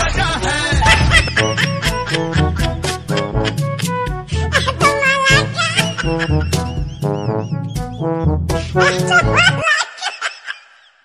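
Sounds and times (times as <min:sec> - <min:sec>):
music with steady beat: 0:00.7 - 0:04.3, 0:06.4 - 0:08.8
person laughing: 0:00.7 - 0:11.0.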